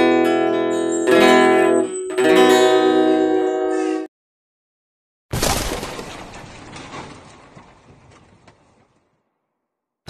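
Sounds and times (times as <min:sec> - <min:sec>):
glass shattering: 0:05.3 - 0:08.4.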